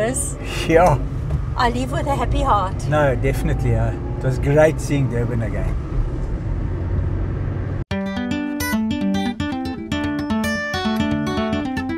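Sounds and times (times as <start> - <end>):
car road and engine rumble: 0.0 - 7.9
acoustic guitar music: 7.9 - 11.9.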